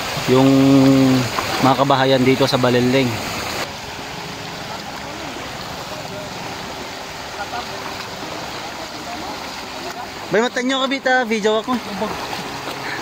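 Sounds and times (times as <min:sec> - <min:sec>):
floodwater rushing: 0:00.0 - 0:13.0.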